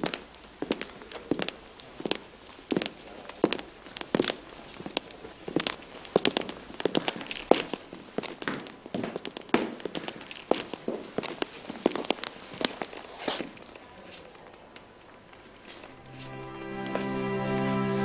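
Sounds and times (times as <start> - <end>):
footsteps on hard floor: 15.7 - 17.5.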